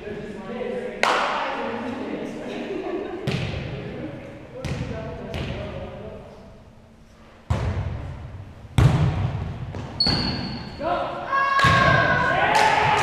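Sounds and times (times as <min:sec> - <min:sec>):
volleyball thuds in gym: 0:07.5 - 0:10.6, 0:11.6 - 0:13.0
players shouting: 0:10.8 - 0:13.0.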